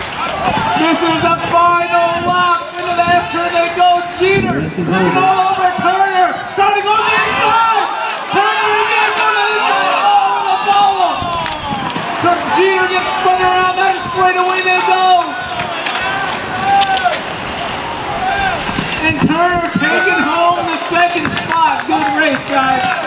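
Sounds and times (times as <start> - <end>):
electric motors whining: 0.0 - 23.0.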